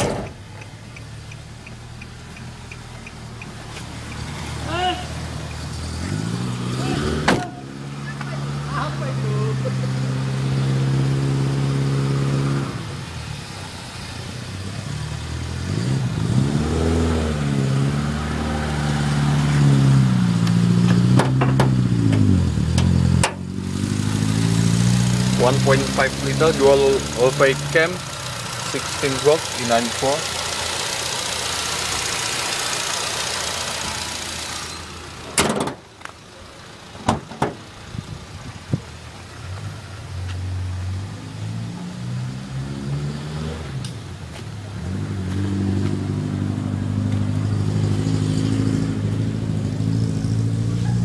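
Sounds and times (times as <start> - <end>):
car engine revving: 0.0 - 44.0.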